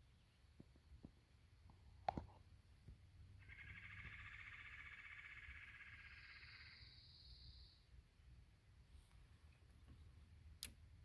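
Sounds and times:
trilling animal call: 0:03.4 - 0:07.7.

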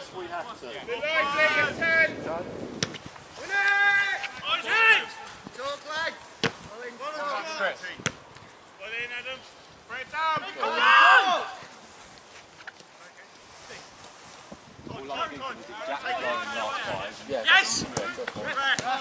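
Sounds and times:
players shouting: 0:00.8 - 0:02.2, 0:03.4 - 0:06.2, 0:08.8 - 0:11.8, 0:15.1 - 0:19.0
ball being kicked: 0:02.8 - 0:03.1, 0:06.4 - 0:06.7.

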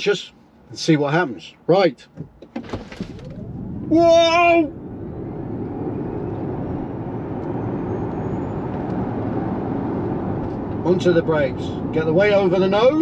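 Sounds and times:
tyre and road noise: 0:02.0 - 0:13.0.

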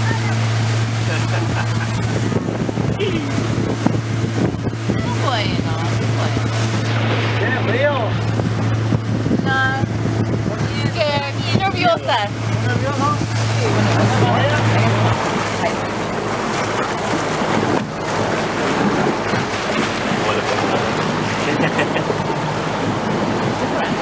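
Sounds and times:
boat motor droning: 0:00.0 - 0:24.0
water rushing along hull: 0:00.0 - 0:24.0
wind buffeting microphone: 0:00.0 - 0:24.0.

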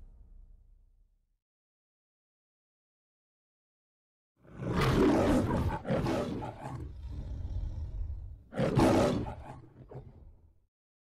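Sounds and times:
lion roaring: 0:04.4 - 0:10.4.

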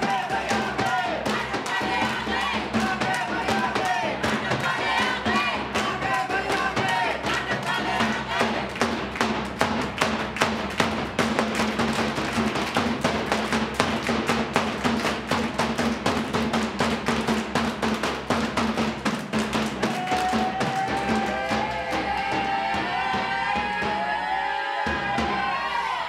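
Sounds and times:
group hand-claps: 0:00.0 - 0:24.0
frame drum beaten fast: 0:00.0 - 0:25.9.

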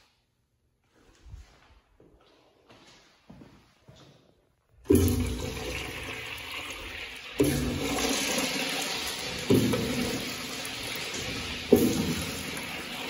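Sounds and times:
faint shuffles: 0:00.8 - 0:04.5
urinal flushing: 0:04.8 - 0:13.0.

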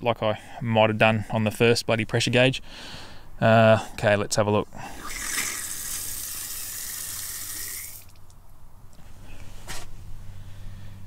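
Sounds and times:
water hissing from valve: 0:05.0 - 0:08.2.

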